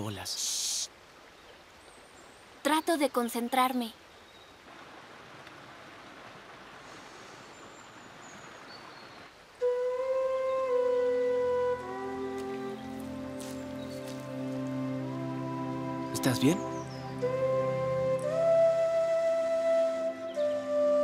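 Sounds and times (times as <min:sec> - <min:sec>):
soft outdoor hiss: 0:00.0 - 0:21.0
sustained soundtrack music: 0:09.6 - 0:21.0.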